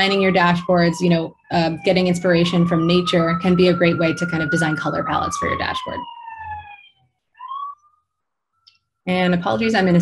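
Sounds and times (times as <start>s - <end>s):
emergency vehicle siren wailing: 0.0s - 8.0s.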